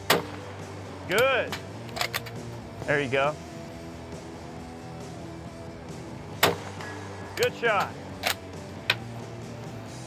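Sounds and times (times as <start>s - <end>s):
rifle shot: 0.0s - 0.5s, 6.4s - 7.1s
background music: 0.0s - 10.0s.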